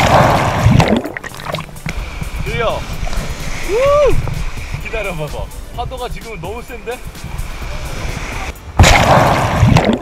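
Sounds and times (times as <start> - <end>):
wind rumble on microphone: 0.0 - 10.0
small waves washing up sand: 1.3 - 5.7.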